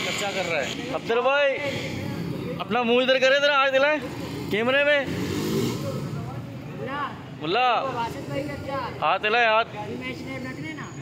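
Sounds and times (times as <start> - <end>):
motorcycle passing: 0.0 - 11.0.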